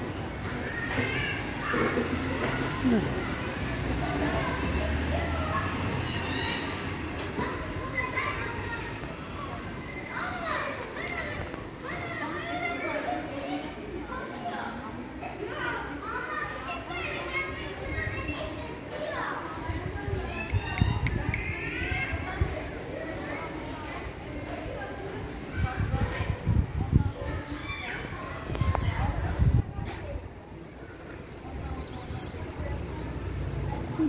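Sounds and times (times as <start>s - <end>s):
children calling and chattering: 0.0s - 34.0s.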